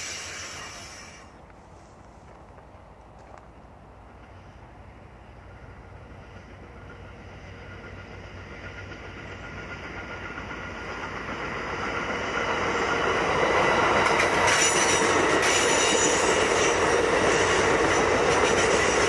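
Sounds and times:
sharp clicks of passing train cars: 0:00.0 - 0:19.0
train wheels rumbling on rails: 0:00.0 - 0:19.0.

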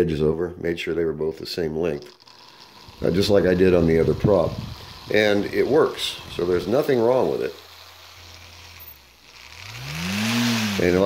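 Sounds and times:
small propeller motor whirring: 0:02.0 - 0:11.0.

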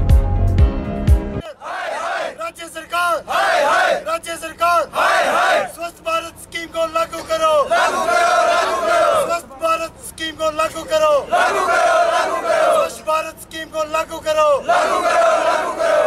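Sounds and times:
crowd shouting slogans: 0:01.4 - 0:09.9, 0:10.6 - 0:16.0.

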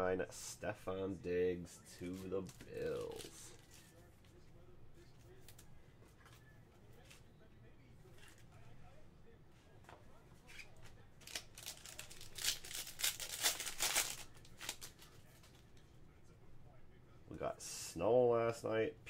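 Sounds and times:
foil wrapper tearing: 0:11.2 - 0:15.0.

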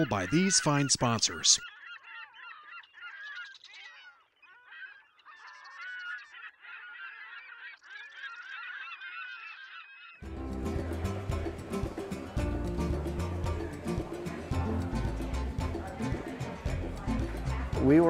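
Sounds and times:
flock of birds calling: 0:00.0 - 0:12.4
background music: 0:10.2 - 0:18.0.

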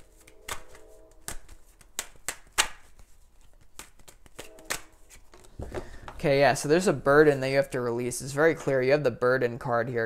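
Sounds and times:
cards being shuffled: 0:00.0 - 0:06.2.

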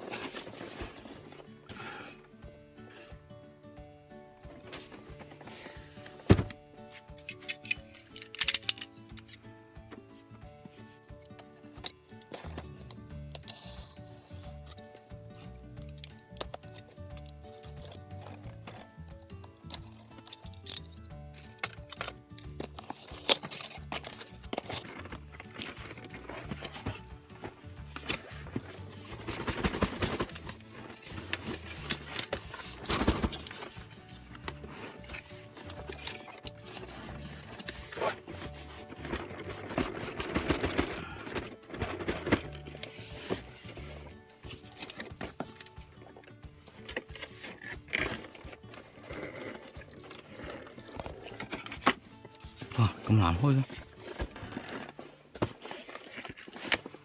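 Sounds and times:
background music: 0:00.0 - 0:57.0
cardboard flaps rustling: 0:22.5 - 0:45.7, 0:50.2 - 0:57.0.

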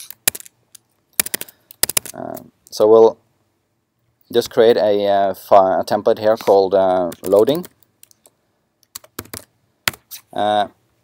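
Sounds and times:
laptop keyboard clicks: 0:00.0 - 0:00.5, 0:01.2 - 0:02.2.

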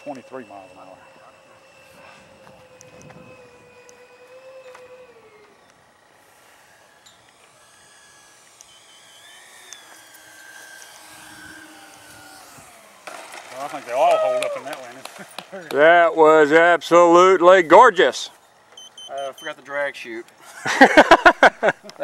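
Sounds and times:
electric ducted-fan motor whining: 0:00.0 - 0:22.0.

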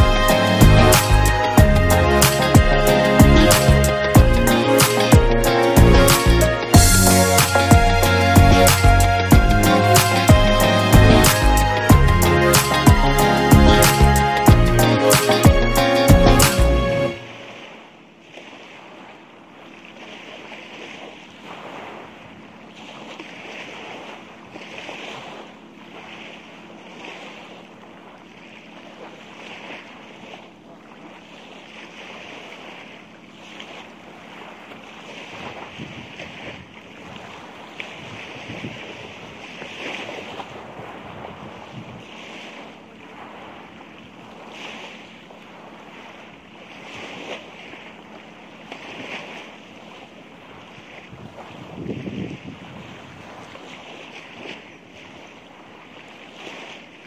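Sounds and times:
sea surf washing on shore: 0:00.0 - 0:57.0
wind buffeting microphone: 0:35.4 - 0:42.2, 0:51.0 - 0:53.7.

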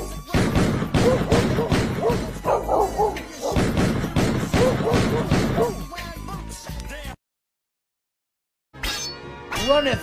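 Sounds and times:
music: 0:00.0 - 0:07.2, 0:08.8 - 0:10.0
gunshot sound effects: 0:00.3 - 0:02.3, 0:03.5 - 0:05.7.

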